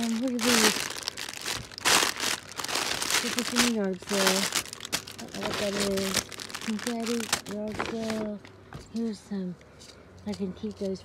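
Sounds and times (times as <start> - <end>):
plastic wrapping crinkling: 0.0 - 8.4.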